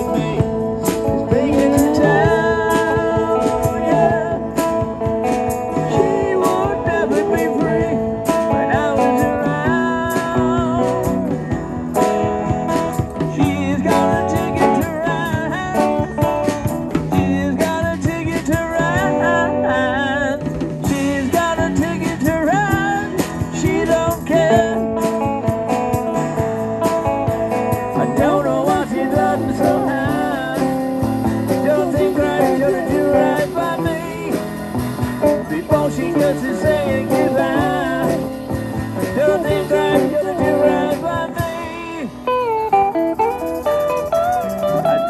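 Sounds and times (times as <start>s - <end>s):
person singing: 0.0s - 11.4s, 13.0s - 25.5s, 27.9s - 42.4s
live rock band: 0.0s - 45.0s.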